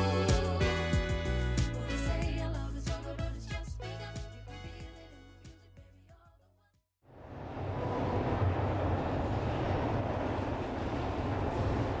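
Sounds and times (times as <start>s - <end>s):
subway train rumbling: 7.1s - 12.0s.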